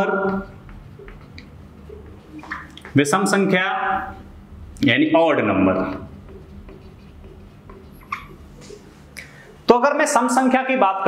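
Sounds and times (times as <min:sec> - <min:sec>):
marker pen writing on whiteboard: 0:00.0 - 0:04.3, 0:05.1 - 0:10.1.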